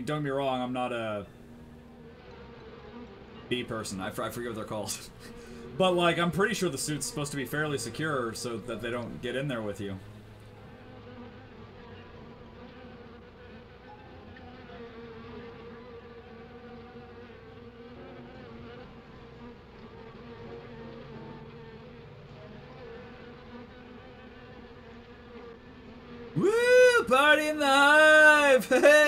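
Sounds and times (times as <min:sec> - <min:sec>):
wasps buzzing: 0:00.0 - 0:29.0.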